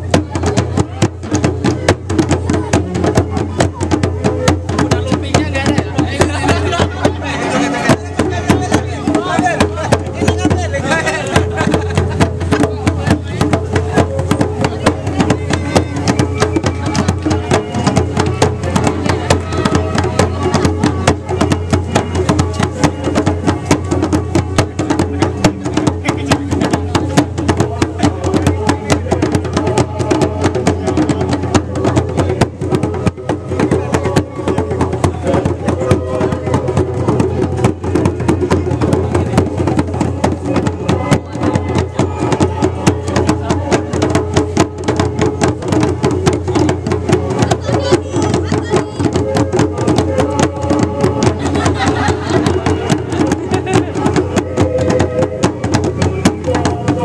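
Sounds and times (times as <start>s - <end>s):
djembe drums playing: 0.0s - 57.0s
voices: 0.0s - 57.0s.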